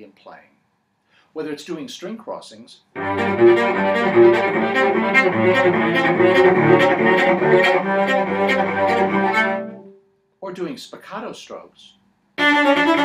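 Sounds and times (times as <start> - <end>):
bowed cello: 3.0 - 9.9, 12.4 - 13.0.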